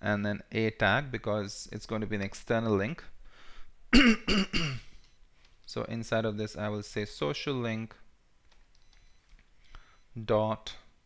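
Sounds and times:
man coughing: 3.9s - 5.0s.

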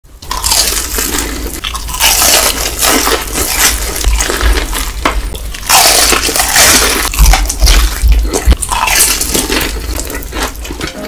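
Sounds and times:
crunching bites of fried chicken: 0.2s - 10.8s
chewing: 0.3s - 11.0s.

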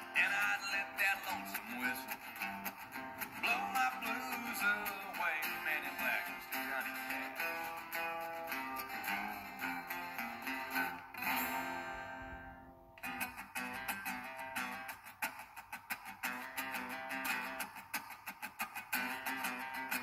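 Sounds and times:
acoustic guitars: 0.0s - 20.0s.

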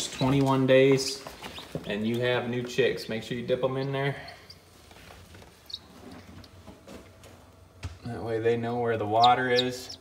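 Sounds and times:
chick peeping: 0.0s - 1.8s, 5.6s - 6.6s, 9.0s - 10.0s.

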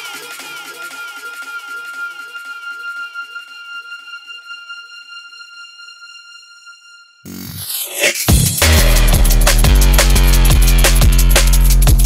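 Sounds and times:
electronic dance music: 0.0s - 4.3s, 7.3s - 12.0s.

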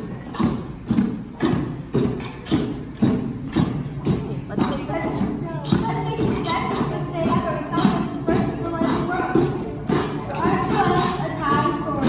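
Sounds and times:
hand drums steady beat: 0.0s - 12.0s.

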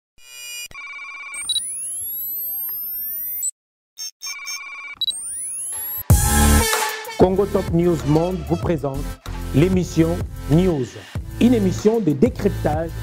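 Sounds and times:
quick electronic blips: 0.2s - 6.1s
warbling electronic tone: 0.2s - 6.1s
electronic rising sweeps: 1.4s - 6.7s.

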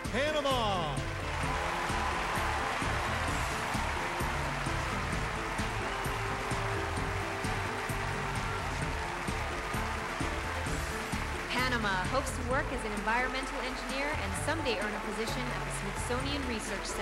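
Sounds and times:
audience applause and cheering: 0.0s - 17.0s
stage music with steady beat: 0.0s - 17.0s.

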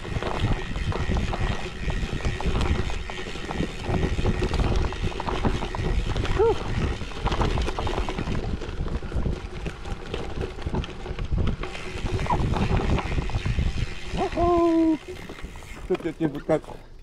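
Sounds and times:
bike tyres crunching over leaves: 0.0s - 16.8s
bike knocking and rattling: 0.0s - 17.0s
rider vocal sound: 6.0s - 7.0s, 14.0s - 16.9s.

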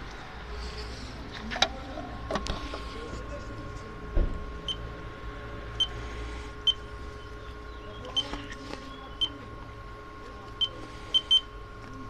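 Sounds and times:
electrical hum: 0.0s - 12.0s
keypad beeps: 9.1s - 9.4s, 10.6s - 11.5s.

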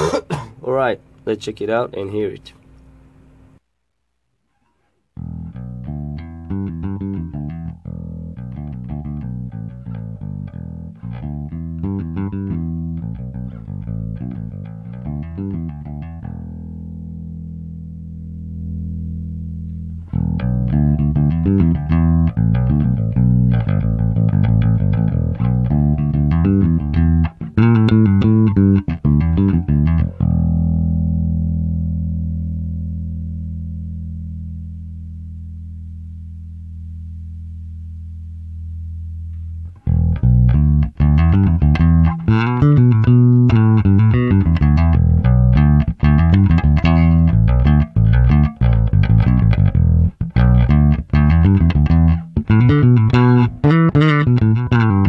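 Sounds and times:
clean electric bass playing: 5.2s - 55.0s.

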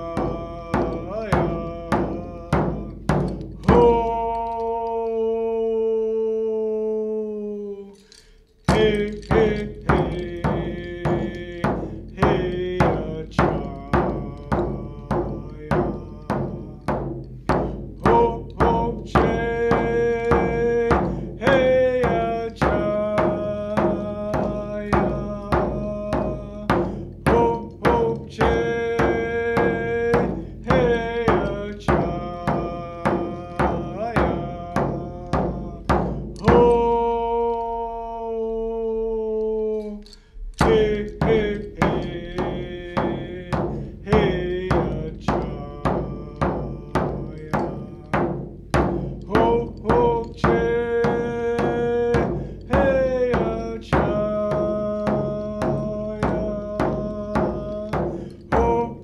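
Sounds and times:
hand drum beat: 0.0s - 4.9s, 8.7s - 37.7s, 40.6s - 59.0s
man singing: 0.0s - 59.0s.

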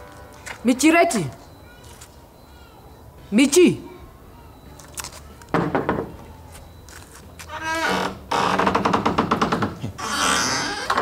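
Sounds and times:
metal door creaking open: 7.4s - 11.0s.

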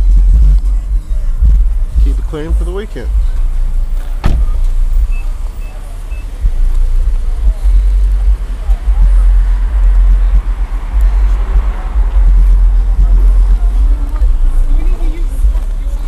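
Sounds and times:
car engine rumbling: 0.0s - 16.0s
sharp knock: 4.2s - 4.6s.

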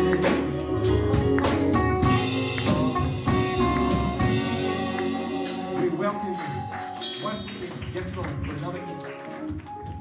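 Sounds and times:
church band with keyboards and drums: 0.0s - 10.0s.

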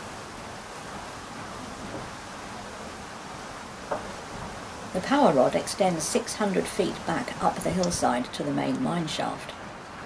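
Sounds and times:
running water rushing: 0.0s - 10.0s.

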